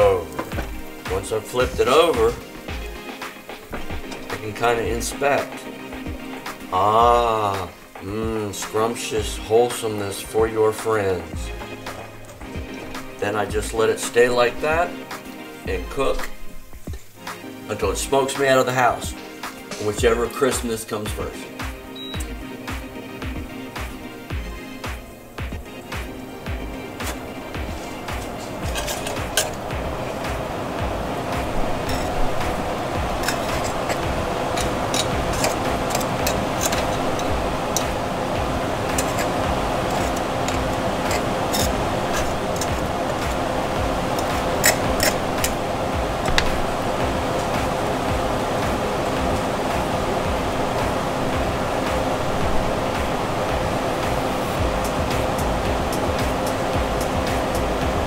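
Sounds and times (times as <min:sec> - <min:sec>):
waffle batter sizzling: 0:00.0 - 0:58.0
steady low hum: 0:11.1 - 0:17.7, 0:21.2 - 0:58.0
sharp crackles and clicks: 0:24.3 - 0:58.0.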